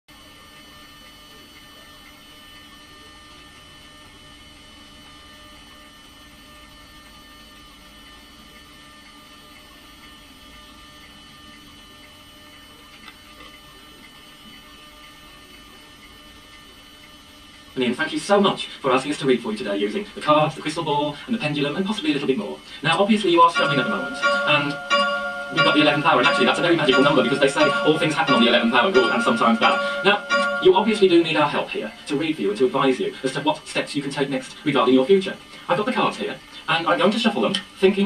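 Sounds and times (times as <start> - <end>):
electrical mains hum: 0.1 - 38.0.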